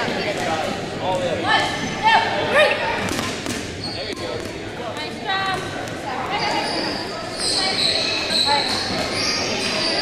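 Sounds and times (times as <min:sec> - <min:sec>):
high squeak: 0:06.4 - 0:10.0.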